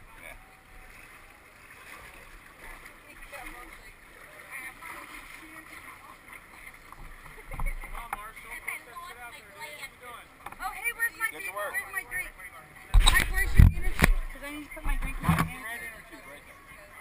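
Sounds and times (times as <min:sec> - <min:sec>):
water lapping against raft: 0:00.0 - 0:09.0, 0:12.8 - 0:16.3
indistinct chatter of people: 0:00.0 - 0:17.0.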